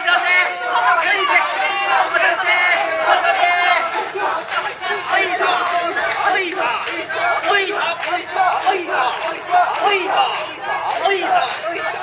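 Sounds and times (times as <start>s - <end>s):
crowd shouting together: 0.0s - 12.0s.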